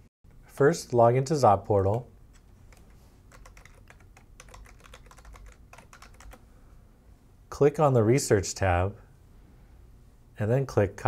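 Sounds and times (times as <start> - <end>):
faint keyboard keystrokes: 1.9 - 6.4.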